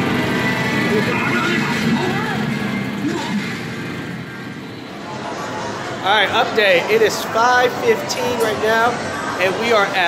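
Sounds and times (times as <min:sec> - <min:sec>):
steady background roar: 0:00.0 - 0:10.0.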